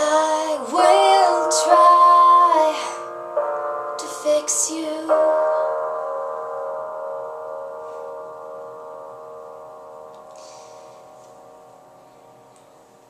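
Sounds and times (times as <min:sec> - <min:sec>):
final chord ringing: 0:06.1 - 0:13.0.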